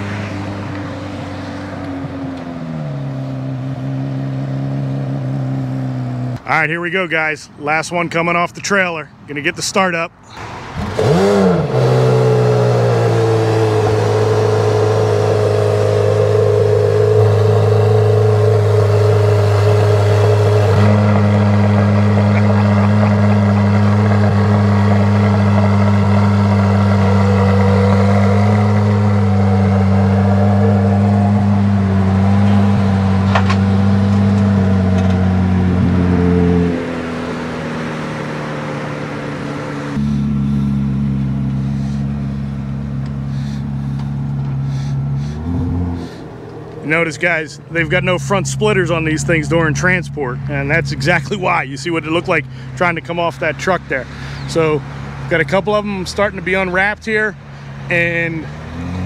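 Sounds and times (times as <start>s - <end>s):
car engine idling: 10.2s - 59.0s.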